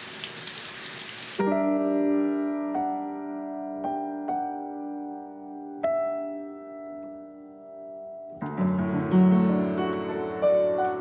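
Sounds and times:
upright piano chords: 0:01.4 - 0:11.0.

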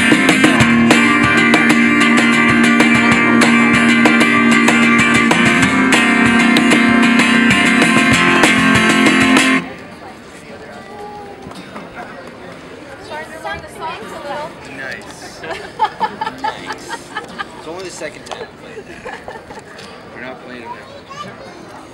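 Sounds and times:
acoustic guitar strumming: 0:00.0 - 0:09.8
cajon percussion: 0:00.0 - 0:09.9.

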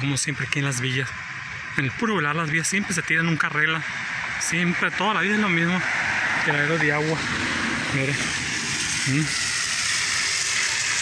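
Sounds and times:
water rushing along a curb: 0:03.9 - 0:11.0.

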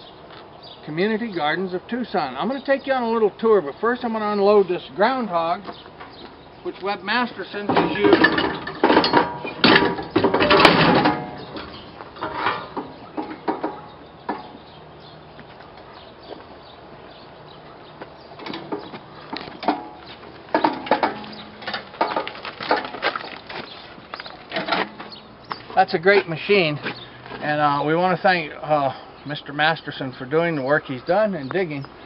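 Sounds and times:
metal clanking and rattling: 0:07.6 - 0:14.5, 0:18.4 - 0:25.3.

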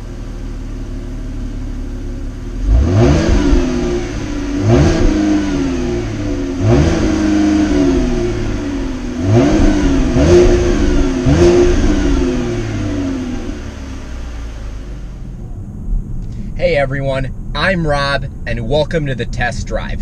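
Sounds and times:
car exhaust revving: 0:00.0 - 0:20.0.

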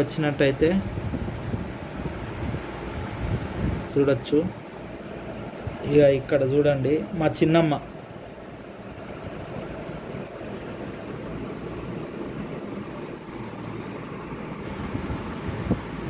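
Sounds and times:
steady rushing noise: 0:00.0 - 0:16.0.

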